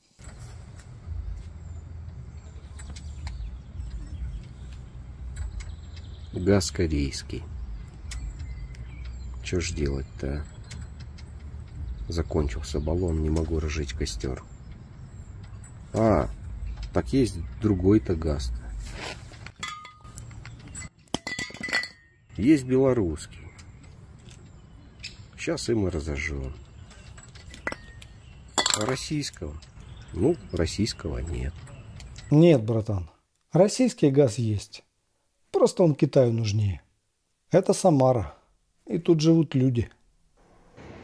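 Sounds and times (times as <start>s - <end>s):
low outdoor rumble: 0.0s - 32.3s
metal gas canisters clinking: 19.3s - 22.2s, 26.1s - 32.3s.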